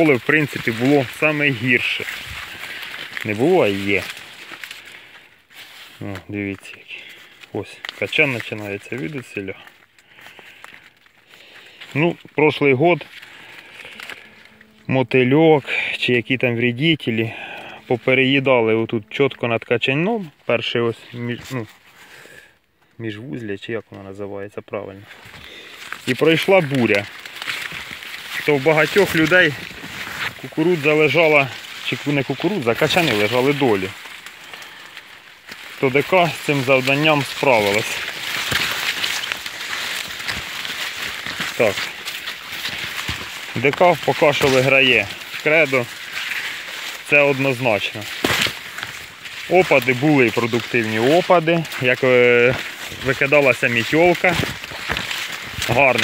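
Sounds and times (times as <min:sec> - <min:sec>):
rustling of maize leaves: 0:00.0 - 0:56.0.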